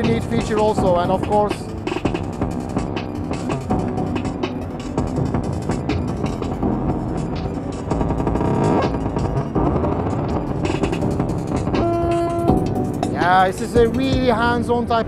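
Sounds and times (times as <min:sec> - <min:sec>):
distorted electronic drum pattern: 0:00.0 - 0:15.0.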